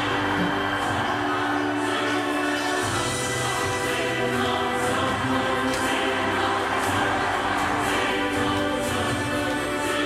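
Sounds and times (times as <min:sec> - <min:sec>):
choir singing: 0:00.0 - 0:10.0
steady musical backing: 0:00.0 - 0:10.0.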